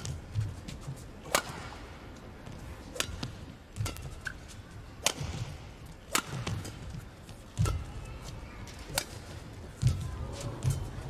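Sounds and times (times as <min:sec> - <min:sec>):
racket striking shuttlecock: 0:01.2 - 0:01.9, 0:02.5 - 0:08.0, 0:08.7 - 0:10.0.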